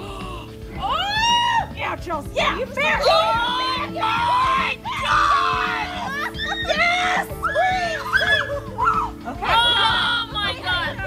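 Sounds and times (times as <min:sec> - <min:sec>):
background music: 0:00.0 - 0:11.0
woman shrieking in pain: 0:04.9 - 0:09.9.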